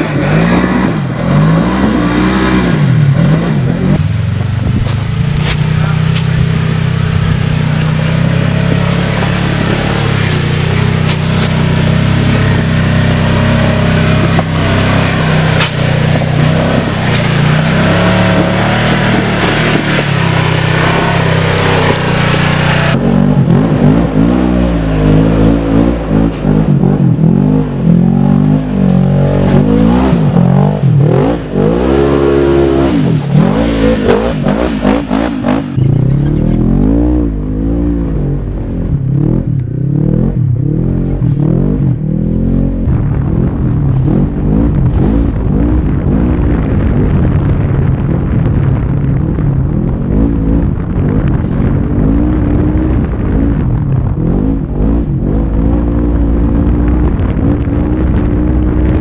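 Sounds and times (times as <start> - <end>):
engine revving under hard throttle: 0.0 - 59.0.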